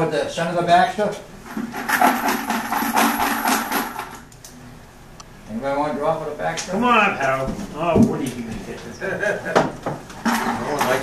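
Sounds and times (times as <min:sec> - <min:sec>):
lots rattling in metal bucket: 0:01.5 - 0:04.2.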